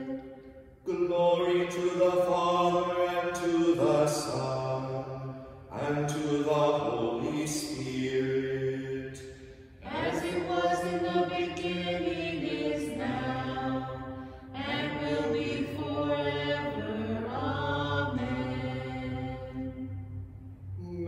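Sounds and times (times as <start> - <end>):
low voice singing plainchant: 20.7 - 21.0.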